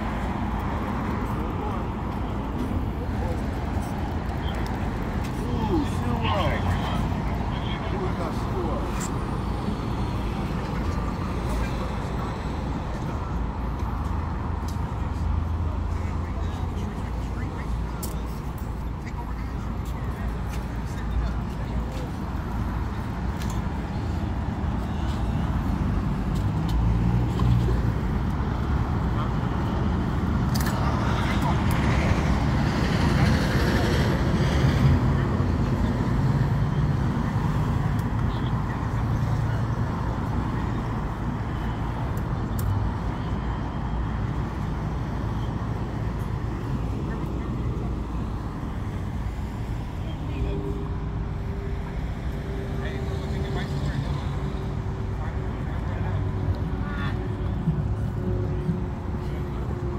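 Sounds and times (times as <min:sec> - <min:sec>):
rumble of passing cars: 0:00.0 - 0:59.9.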